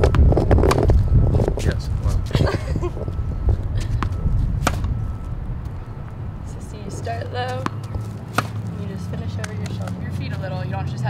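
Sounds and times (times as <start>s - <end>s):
low background hum: 0.0s - 11.0s
tennis ball struck by racket: 3.8s - 5.0s, 7.5s - 9.9s.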